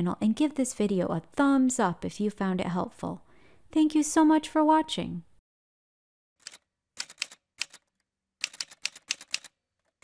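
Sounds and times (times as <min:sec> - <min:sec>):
typewriter keystrokes: 0:06.4 - 0:10.0.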